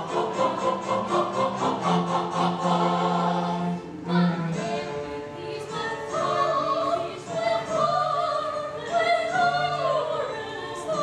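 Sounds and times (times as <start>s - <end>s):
opera chorus singing: 0.0s - 11.0s.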